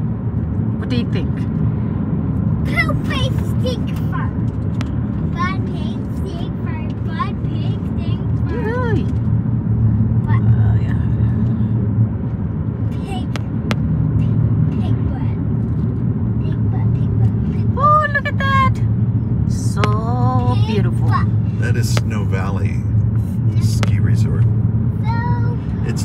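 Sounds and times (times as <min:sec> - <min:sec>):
car cabin road rumble: 0:00.0 - 0:26.0.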